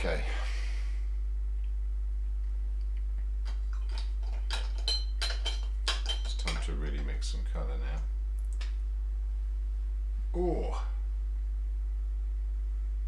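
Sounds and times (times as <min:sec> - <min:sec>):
tools clinking against glass: 0:03.8 - 0:06.7
low mumbling voice: 0:10.3 - 0:11.0.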